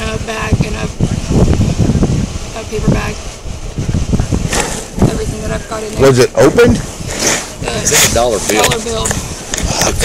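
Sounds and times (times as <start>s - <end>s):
hissing rustle: 0.0s - 10.0s
low rumbling wind noise: 0.0s - 10.0s.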